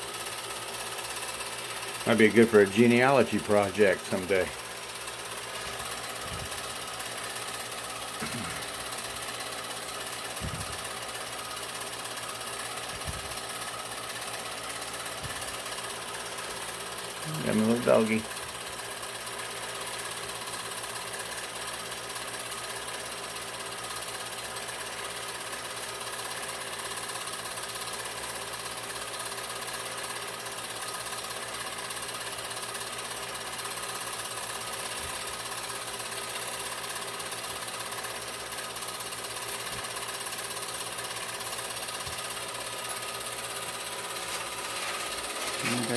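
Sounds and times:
film projector whirring: 0:00.0 - 0:45.9.

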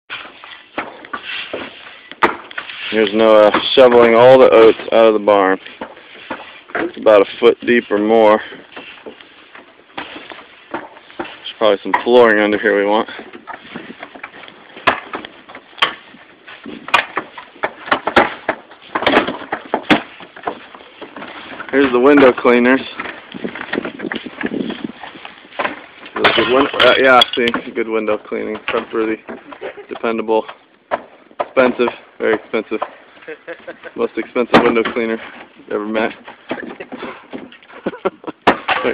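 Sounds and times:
wooden boards knocking: 0:00.1 - 0:38.9.

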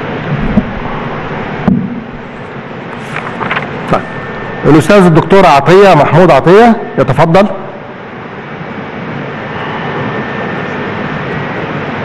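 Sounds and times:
broadcast hiss and rumble: 0:00.0 - 0:12.0.

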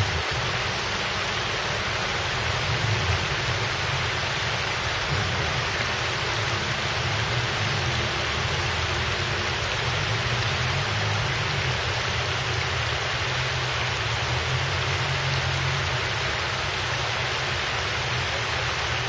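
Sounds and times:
river water rushing over rocks: 0:00.0 - 0:19.0.

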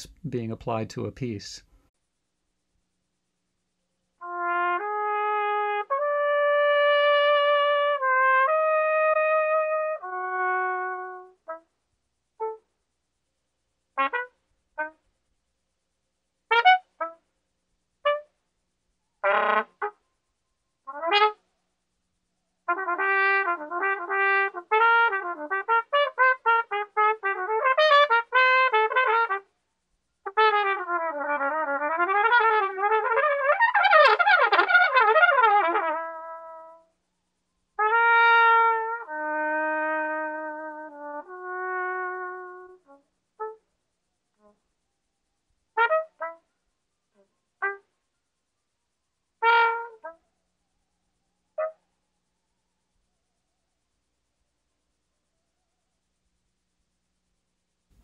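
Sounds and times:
solo trumpet playing jazz: 0:04.2 - 0:11.7, 0:12.4 - 0:12.6, 0:14.0 - 0:15.0, 0:16.5 - 0:17.2, 0:18.0 - 0:18.3, 0:19.2 - 0:20.0, 0:20.9 - 0:21.4, 0:22.7 - 0:29.5, 0:30.3 - 0:36.9, 0:37.8 - 0:43.6, 0:45.8 - 0:46.4, 0:47.6 - 0:47.8, 0:49.4 - 0:50.2.

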